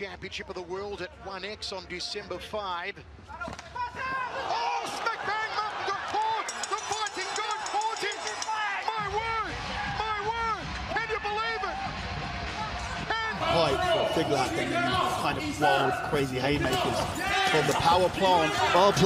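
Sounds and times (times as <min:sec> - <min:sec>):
arena crowd noise: 0:00.0 - 0:19.0
people shouting: 0:03.8 - 0:11.7, 0:16.6 - 0:19.0.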